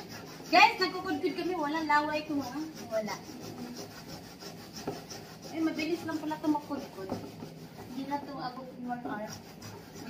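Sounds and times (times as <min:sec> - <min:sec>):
cassava grating on metal grater: 0:00.0 - 0:10.0.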